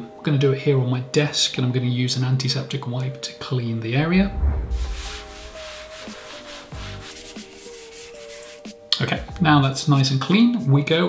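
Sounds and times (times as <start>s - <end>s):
soft background music: 0.0s - 11.0s
wipe scrubbing wooden desk: 4.9s - 8.8s.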